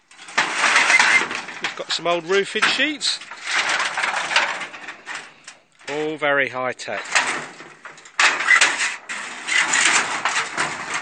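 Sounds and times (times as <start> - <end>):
metal roofing sheet scraping: 0.0 - 6.2, 6.9 - 11.0.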